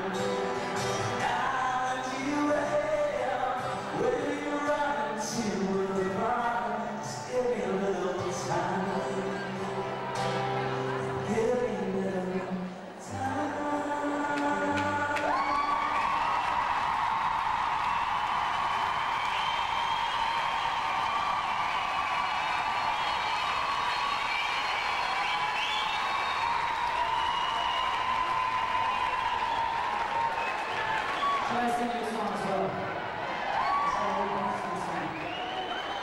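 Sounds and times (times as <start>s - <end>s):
acoustic guitar: 0.0s - 17.2s
audience applauding and cheering: 13.4s - 36.0s
whistles: 19.1s - 21.1s, 21.7s - 31.5s, 35.1s - 36.0s.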